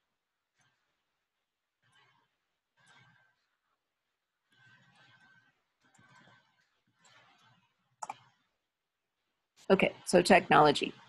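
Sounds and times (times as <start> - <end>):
computer keyboard typing: 8.0 - 8.2.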